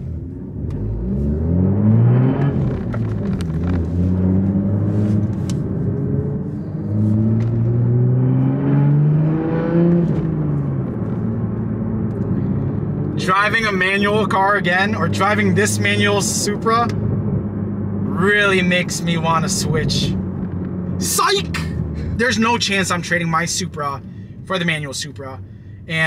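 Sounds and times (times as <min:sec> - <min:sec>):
car engine accelerating: 0:00.0 - 0:25.3.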